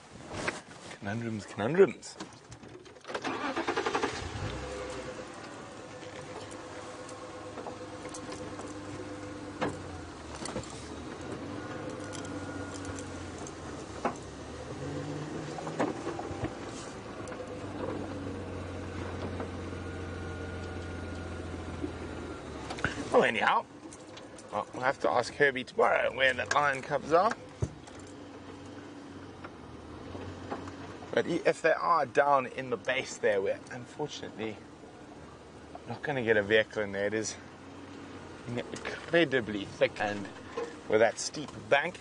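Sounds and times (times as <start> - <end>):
vehicle engine starting and running: 2.3 - 42.0.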